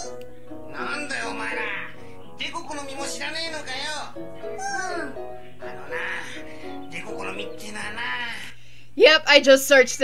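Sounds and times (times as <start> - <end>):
cartoon character sing-song speaking: 4.6 - 5.2.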